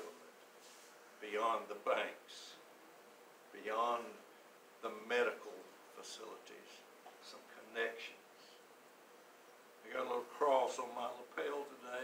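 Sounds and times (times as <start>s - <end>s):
man speaking: 0.0s - 0.2s, 1.2s - 2.6s, 3.5s - 8.3s, 9.8s - 12.0s
faint steady hum: 0.0s - 12.0s.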